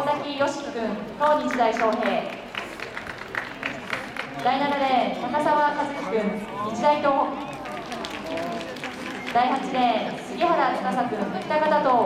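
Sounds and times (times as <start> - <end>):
public-address announcer speaking: 0.0 - 2.8, 3.4 - 12.0.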